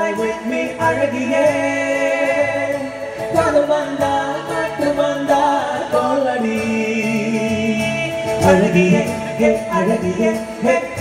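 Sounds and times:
acoustic guitar: 0.0 - 11.0
men singing: 0.0 - 11.0.

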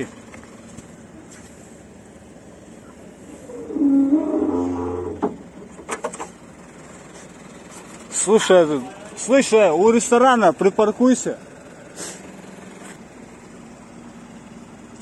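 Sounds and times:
hydraulic lift whining: 3.2 - 6.3.

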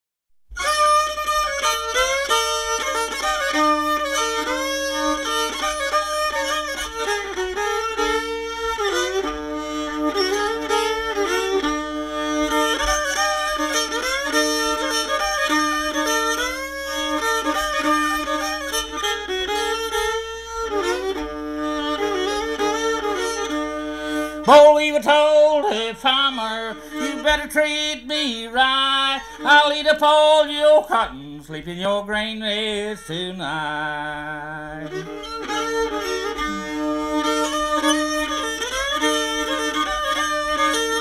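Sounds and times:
fiddle melody: 0.5 - 41.0
banjo: 34.7 - 41.0.

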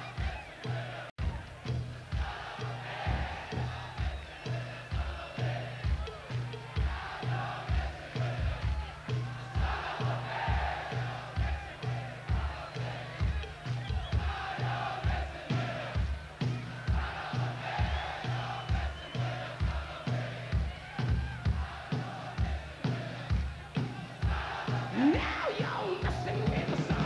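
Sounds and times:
crowd singing and chanting: 0.0 - 27.0.

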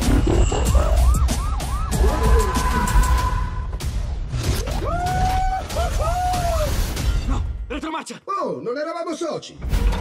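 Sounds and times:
police siren yelping: 0.4 - 3.4.

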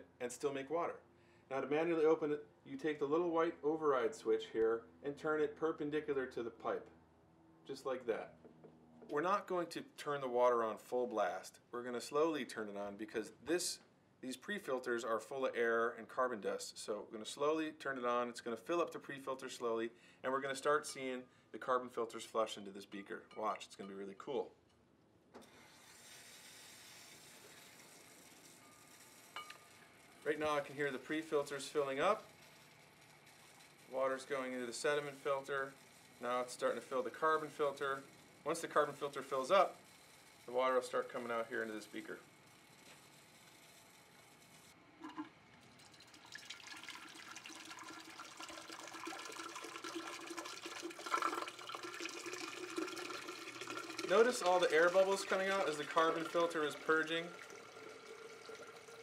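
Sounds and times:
water running into filter housings: 25.4 - 39.8, 45.0 - 59.0
water spluttering from tubing: 46.0 - 59.0.

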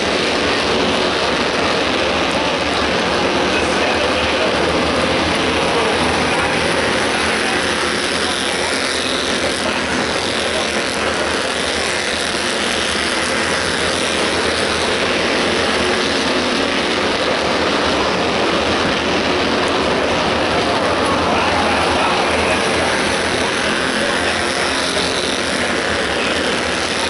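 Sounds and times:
stock car engines running: 0.0 - 27.0.

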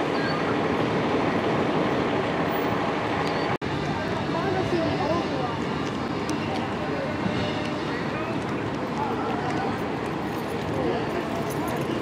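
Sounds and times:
vehicle engines running: 0.0 - 12.0.

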